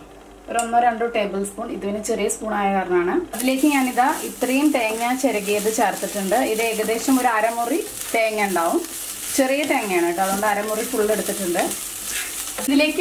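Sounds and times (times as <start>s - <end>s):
light sizzle: 0.0s - 13.0s
wooden spatula scraping pan: 10.8s - 12.8s.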